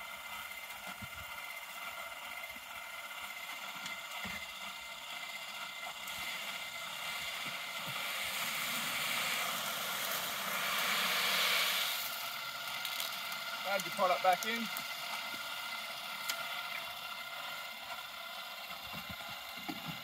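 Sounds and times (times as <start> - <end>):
steady machine whine: 0.0 - 20.0.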